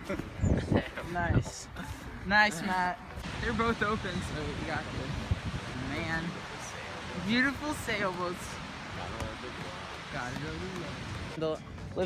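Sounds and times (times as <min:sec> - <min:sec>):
surf and wind hiss: 0:00.4 - 0:11.4.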